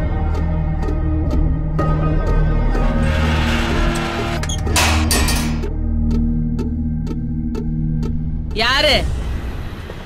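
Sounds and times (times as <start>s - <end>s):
dramatic music with low drone: 0.0s - 9.9s.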